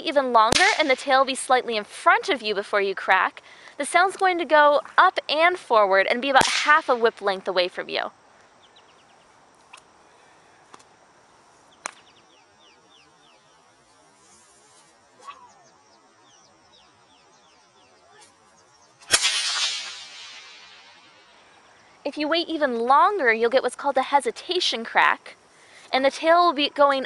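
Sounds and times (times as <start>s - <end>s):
bullwhip crack: 0.5s - 1.0s, 6.4s - 7.0s, 11.8s - 12.1s, 14.6s - 15.6s, 19.0s - 21.5s
faint chirping: 8.1s - 19.1s, 20.0s - 22.1s.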